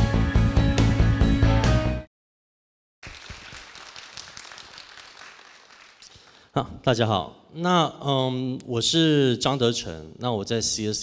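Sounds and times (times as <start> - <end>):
audience applauding: 3.0 - 6.5.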